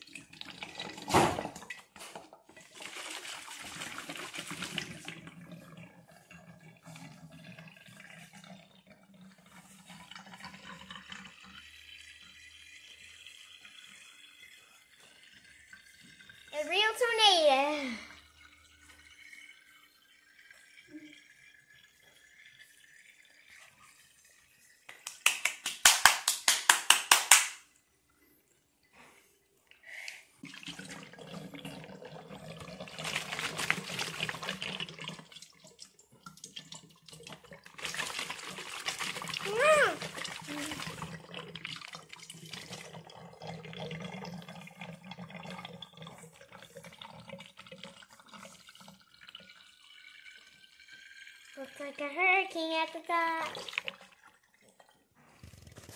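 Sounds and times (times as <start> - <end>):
water sloshing and gurgling in bottles: 0.0 - 24.9, 30.4 - 55.9.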